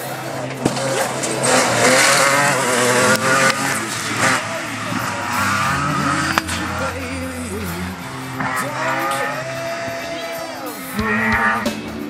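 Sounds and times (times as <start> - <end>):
buggy engine revving: 0.0 - 12.0.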